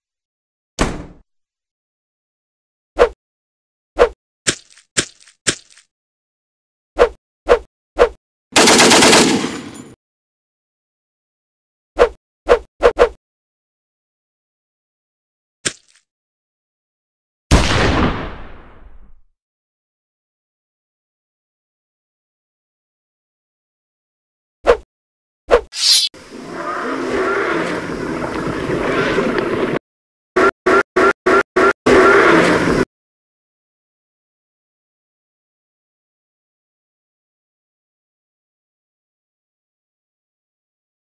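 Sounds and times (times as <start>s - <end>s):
automatic gunfire burst: 8.6s - 9.8s
single gunshots: 17.5s - 18.9s.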